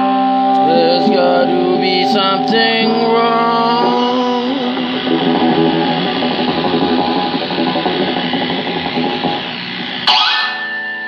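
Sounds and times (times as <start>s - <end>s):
electric guitar run with effects: 0.0s - 11.0s
steady high tone: 0.0s - 11.0s.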